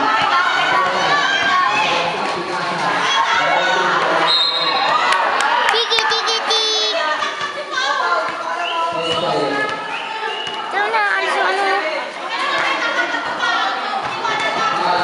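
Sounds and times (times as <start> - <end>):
children shouting and cheering: 4.9 - 8.4.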